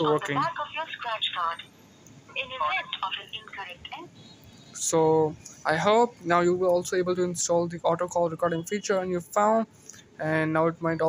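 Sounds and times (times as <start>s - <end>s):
automated voice over phone speaker: 0.0s - 1.6s, 2.3s - 4.0s.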